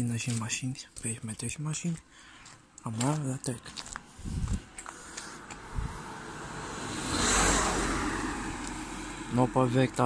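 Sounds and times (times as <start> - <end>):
car passing on asphalt: 3.6 - 10.0.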